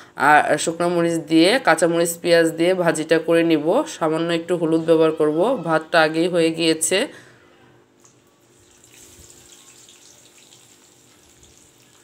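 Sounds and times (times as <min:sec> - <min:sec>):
hot oil sizzling: 0:08.5 - 0:12.0.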